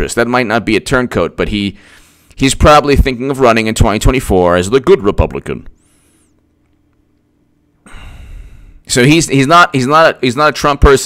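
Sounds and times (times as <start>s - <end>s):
man speaking: 0.0s - 1.8s, 2.4s - 5.8s, 8.8s - 11.0s
man breathing into microphone: 1.8s - 2.4s, 5.8s - 6.4s, 7.8s - 8.9s.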